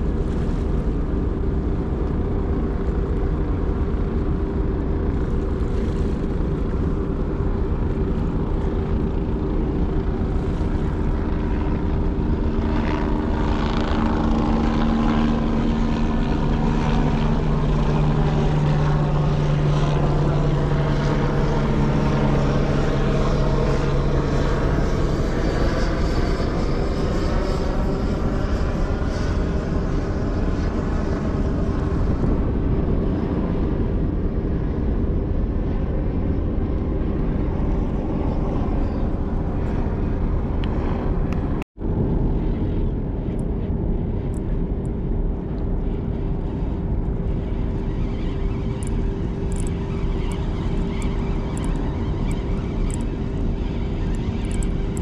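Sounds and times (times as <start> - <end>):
propeller aircraft engine drone: 0.0 - 55.0
steady rushing background: 0.0 - 55.0.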